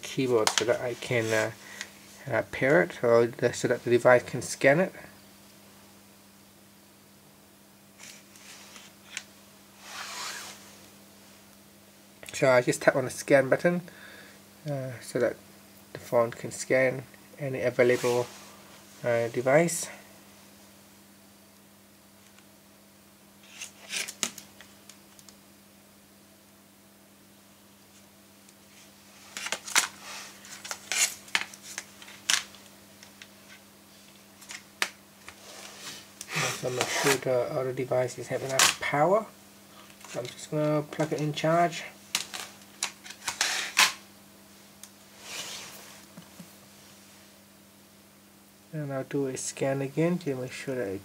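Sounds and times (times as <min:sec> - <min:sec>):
soft rustle: 0:00.6 - 0:02.3, 0:08.0 - 0:11.5, 0:17.7 - 0:19.6, 0:35.3 - 0:37.2, 0:44.5 - 0:47.4.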